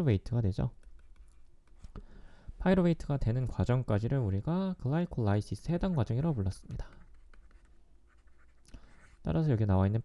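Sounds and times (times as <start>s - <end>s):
stylus scratching on pen tablet: 0.8s - 1.9s, 5.6s - 9.4s.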